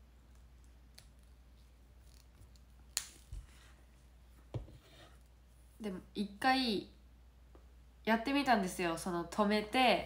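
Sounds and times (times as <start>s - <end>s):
soft thump: 4.5s - 4.8s.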